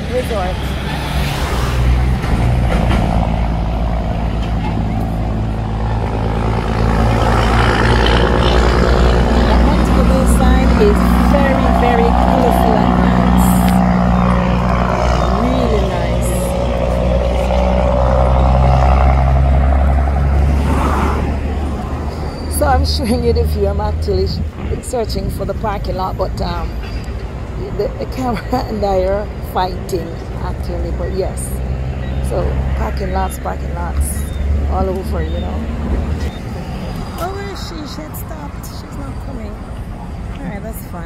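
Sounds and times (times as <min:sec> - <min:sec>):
road noise: 0:00.0 - 0:41.0
vehicle engine drone: 0:00.0 - 0:41.0
faint voices: 0:04.0 - 0:17.8.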